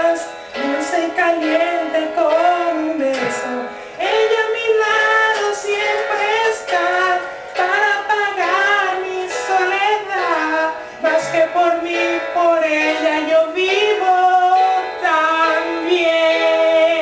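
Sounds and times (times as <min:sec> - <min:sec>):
musical accompaniment: 0:00.0 - 0:17.0
person singing a slow ballad: 0:00.0 - 0:17.0.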